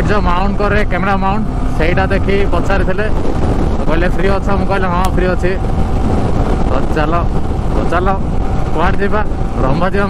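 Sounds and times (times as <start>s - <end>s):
man's voice: 0.0s - 3.2s, 3.8s - 5.6s, 6.7s - 10.0s
motorcycle engine riding: 0.0s - 10.0s
wind rushing: 0.0s - 10.0s.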